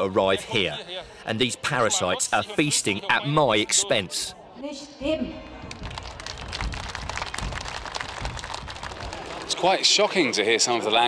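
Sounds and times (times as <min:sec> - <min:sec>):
crowd applauding: 0:05.6 - 0:10.3.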